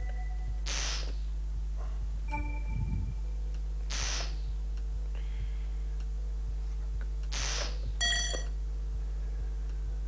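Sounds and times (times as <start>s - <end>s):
mains hum: 0.0s - 10.0s
brief electronic beep: 2.3s - 3.2s.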